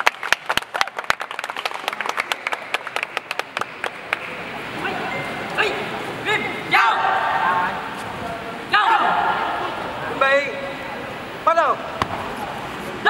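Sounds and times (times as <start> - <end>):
sparse crowd applause: 0.0 - 4.8.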